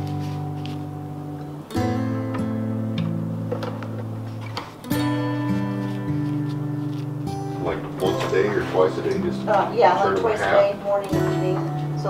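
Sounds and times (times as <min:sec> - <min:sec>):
strummed acoustic guitar chords: 0:00.0 - 0:12.0.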